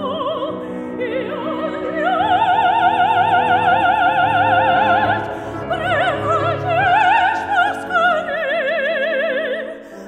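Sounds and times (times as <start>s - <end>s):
grand piano: 0.0s - 10.0s
soprano singing with vibrato: 0.0s - 10.0s.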